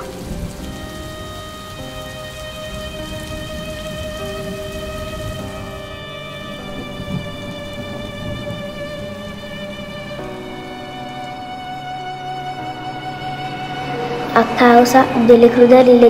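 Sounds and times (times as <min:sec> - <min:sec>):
rain pattering: 0:00.0 - 0:16.0
soft sustained music notes: 0:00.0 - 0:16.0.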